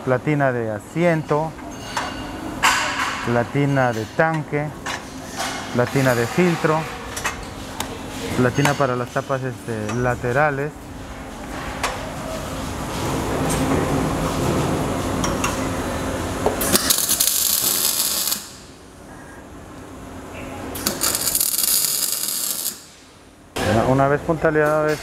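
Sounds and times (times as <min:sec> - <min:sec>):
welder arc crackle: 0:16.6 - 0:18.7, 0:20.8 - 0:22.9.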